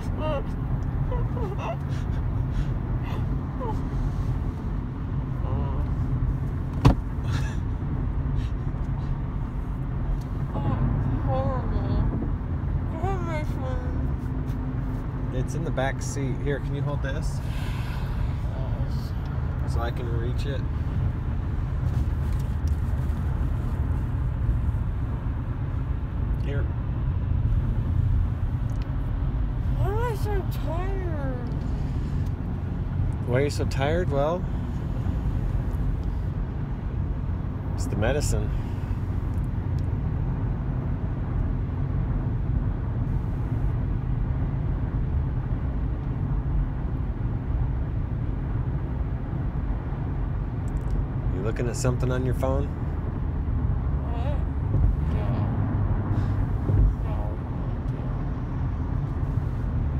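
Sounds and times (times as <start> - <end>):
car interior rumble: 0.0 - 59.9.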